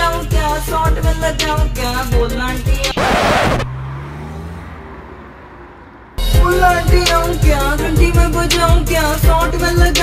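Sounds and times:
car driving away: 0:01.2 - 0:07.6.

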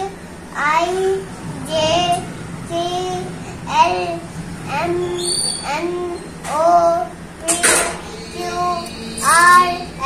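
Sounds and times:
boy singing: 0:04.8 - 0:10.0.

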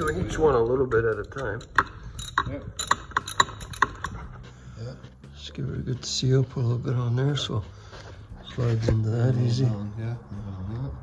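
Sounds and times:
socket ratchet clicking: 0:01.3 - 0:04.2.

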